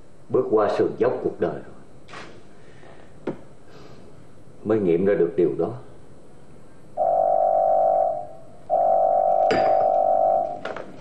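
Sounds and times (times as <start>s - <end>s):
corded telephone ringing: 7.0s - 10.6s.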